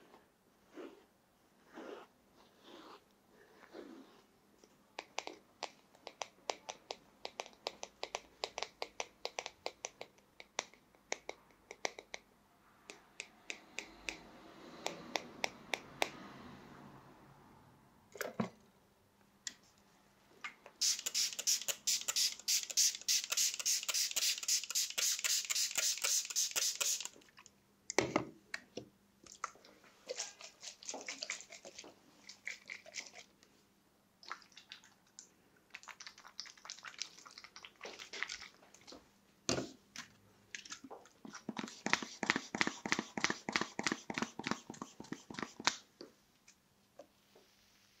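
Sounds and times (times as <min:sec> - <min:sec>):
squeeze bottle hissing puffs: 0:20.8 - 0:27.2.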